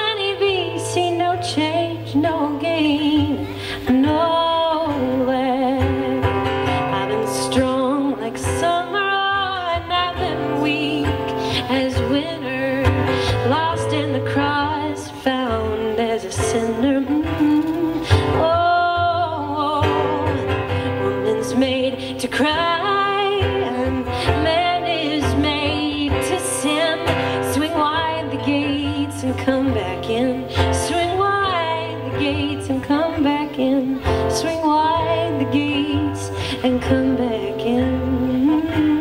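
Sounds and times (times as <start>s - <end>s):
acoustic guitar: 0.0s - 39.0s
woman singing folk song: 0.0s - 39.0s.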